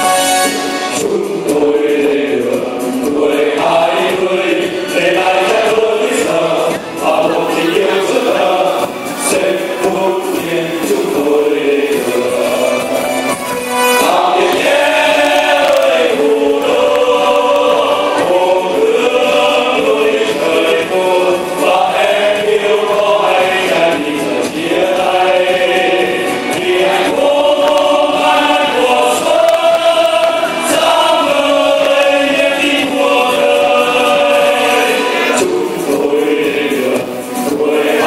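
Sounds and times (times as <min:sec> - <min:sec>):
choir singing with accompaniment: 0:00.0 - 0:38.0.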